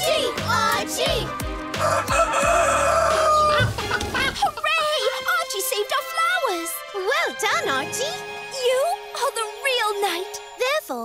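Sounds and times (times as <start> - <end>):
cartoon rooster-like crowing: 1.8 - 3.7.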